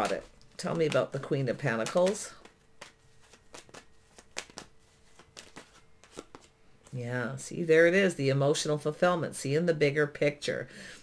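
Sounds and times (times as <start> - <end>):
cards being shuffled: 0.0 - 7.0.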